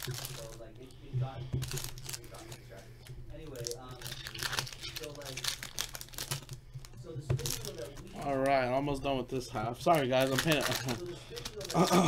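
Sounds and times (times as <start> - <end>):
foil wrapper crinkling: 0.0 - 1.0, 1.6 - 12.0
steady low hum: 0.0 - 12.0.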